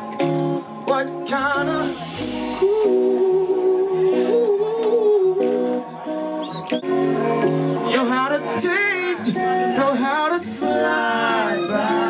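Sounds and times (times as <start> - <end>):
live band guitar and bass: 0.0 - 12.0.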